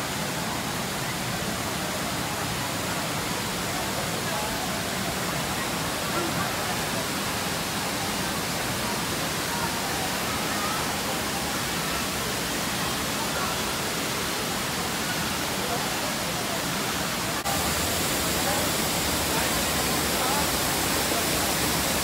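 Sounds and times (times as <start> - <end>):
waterfall roaring: 0.0 - 22.0.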